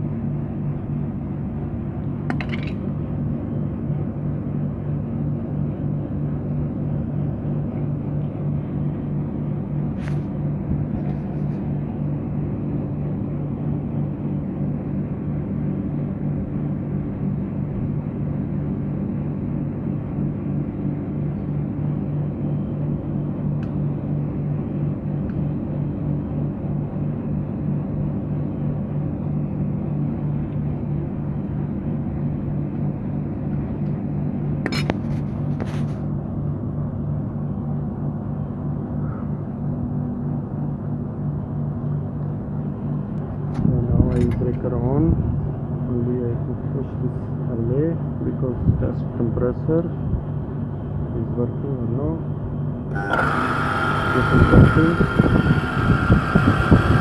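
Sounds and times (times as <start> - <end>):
compressor humming: 0.0 - 57.0.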